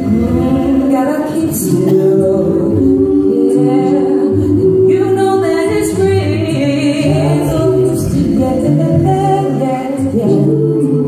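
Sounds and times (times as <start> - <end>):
a cappella gospel group singing: 0.0 - 11.0.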